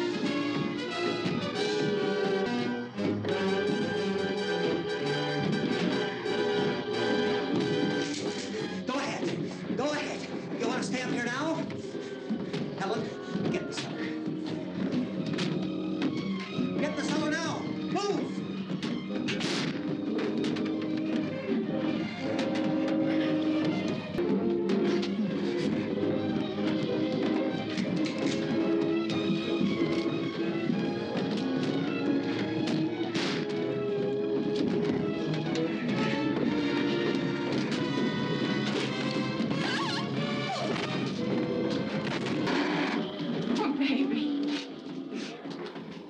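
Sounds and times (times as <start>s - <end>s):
tense film music: 0.0s - 46.0s
sharp crashes and knocks: 18.8s - 21.3s.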